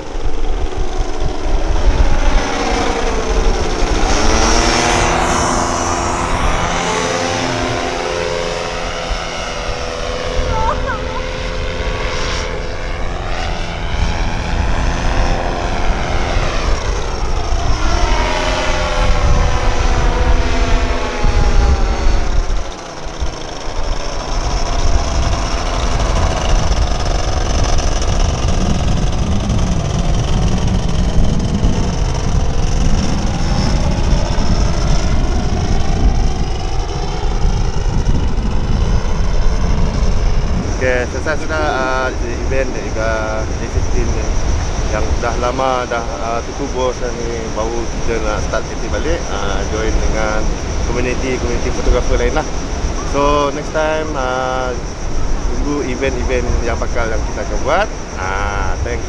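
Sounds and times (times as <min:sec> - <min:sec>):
propeller engine droning: 0:00.0 - 0:59.0.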